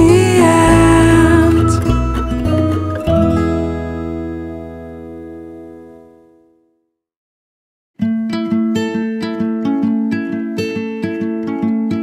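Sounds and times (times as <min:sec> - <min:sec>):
acoustic guitar chord ringing: 0:00.0 - 0:06.6.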